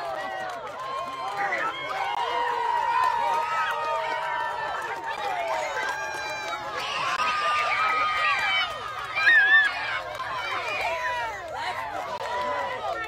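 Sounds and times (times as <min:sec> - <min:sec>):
crowd shouting and talking: 0:00.0 - 0:13.0.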